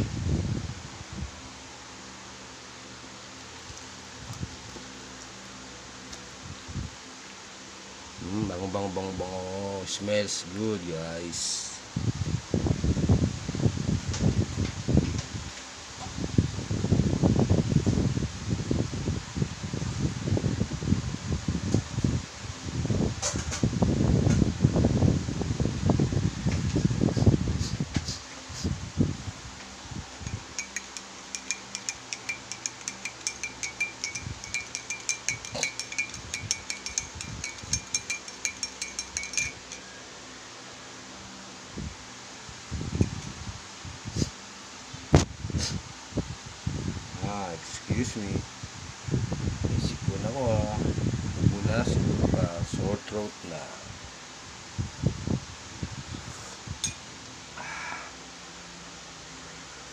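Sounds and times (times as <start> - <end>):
spoon stirring in ceramic mug: 30.2 - 39.9.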